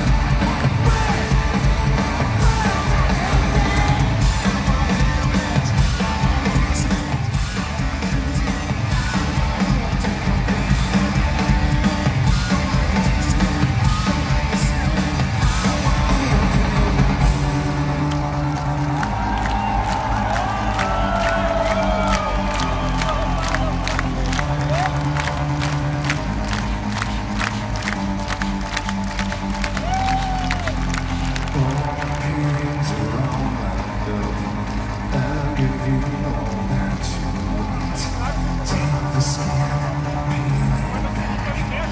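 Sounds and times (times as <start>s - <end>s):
live rock band playing: 0.0s - 41.9s
crowd cheering and whistling: 11.8s - 36.0s.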